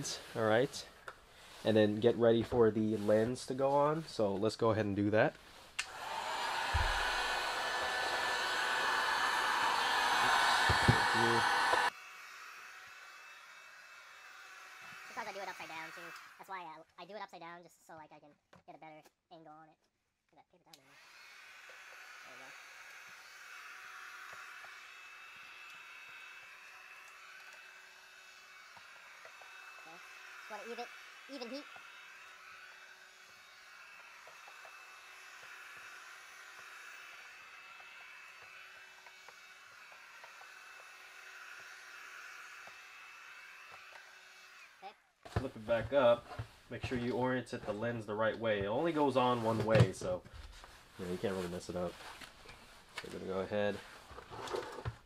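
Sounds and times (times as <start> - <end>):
heat gun blowing: 5.4 - 16.5, 20.8 - 47.2.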